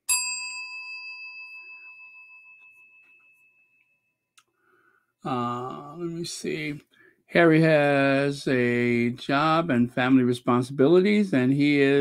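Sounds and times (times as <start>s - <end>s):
bell-like chime ringing: 0.0s - 4.3s.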